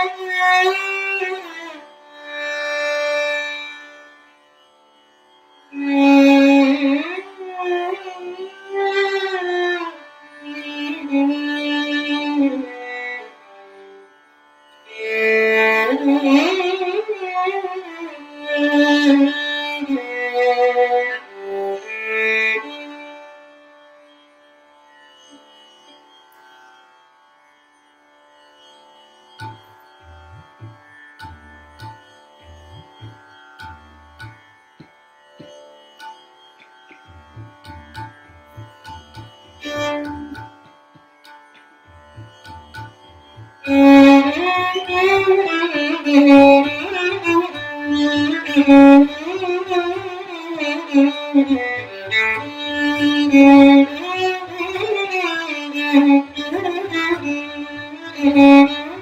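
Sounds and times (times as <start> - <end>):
violin sliding between notes: 36.9 - 41.4, 42.0 - 59.0.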